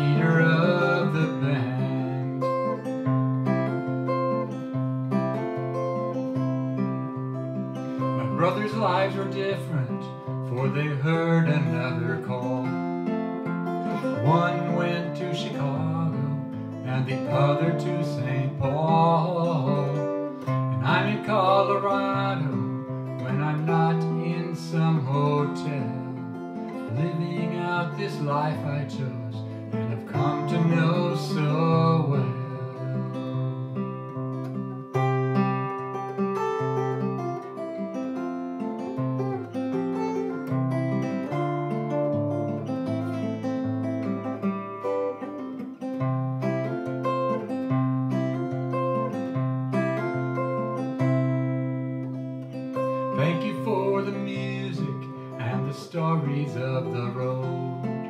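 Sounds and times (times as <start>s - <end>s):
acoustic guitar playing: 0.0s - 58.0s.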